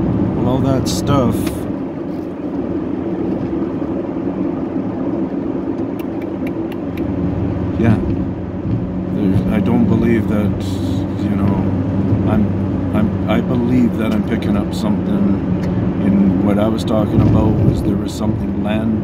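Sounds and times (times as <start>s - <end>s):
car engine and road drone: 0.0s - 19.0s.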